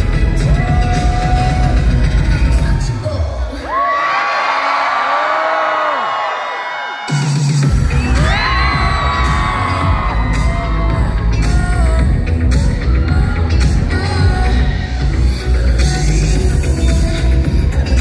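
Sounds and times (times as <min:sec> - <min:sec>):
dance track over concert pa: 0:00.0 - 0:18.0.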